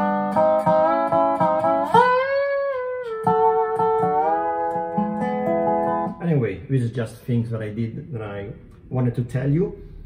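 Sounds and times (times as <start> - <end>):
resonator guitar slide notes: 0.0 - 6.2.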